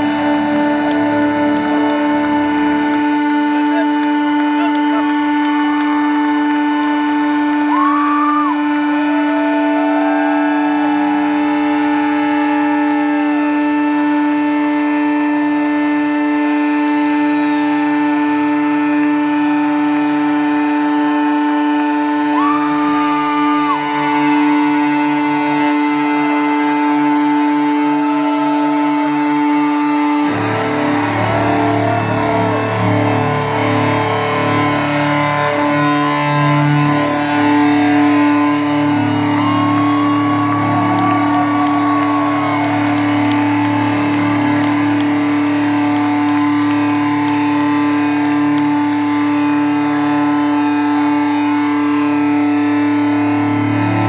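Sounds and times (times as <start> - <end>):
rock band with distorted guitars: 0.0 - 13.4, 27.8 - 54.0
electric guitar feedback drone: 0.0 - 54.0.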